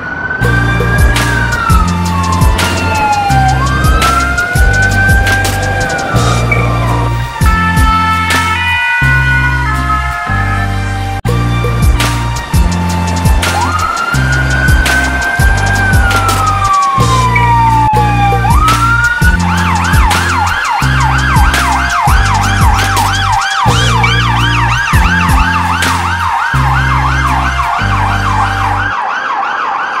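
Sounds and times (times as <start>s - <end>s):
police siren wailing and yelping: 0.0s - 10.8s, 11.7s - 30.0s
music with steady beat: 0.4s - 28.9s.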